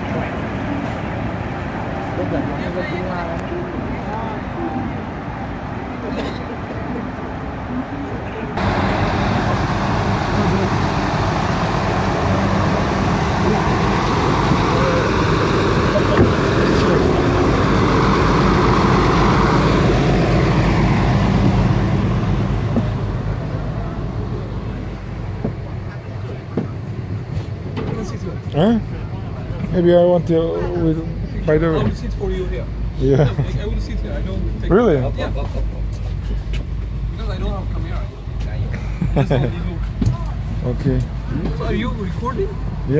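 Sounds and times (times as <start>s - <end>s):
hovercraft engines droning: 0.0s - 42.9s.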